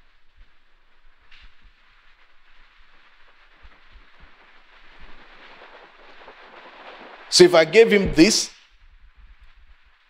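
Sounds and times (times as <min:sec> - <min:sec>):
faint steady hiss: 0:00.0 - 0:08.7.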